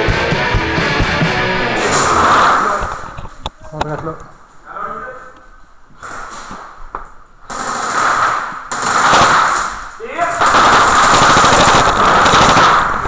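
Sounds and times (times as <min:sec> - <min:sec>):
airsoft rifle rapid fire: 0:07.5 - 0:09.8, 0:10.4 - 0:13.0.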